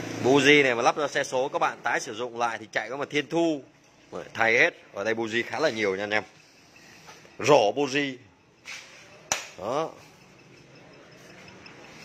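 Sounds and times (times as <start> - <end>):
sharp click: 8.7 - 9.6.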